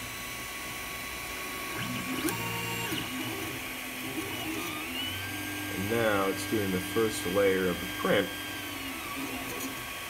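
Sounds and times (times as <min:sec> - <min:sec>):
three d printer fan whirring: 0:00.0 - 0:10.0.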